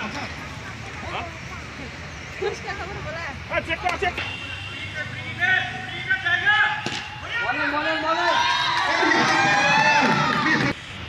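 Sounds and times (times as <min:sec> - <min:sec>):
people calling and talking: 0:00.0 - 0:11.0.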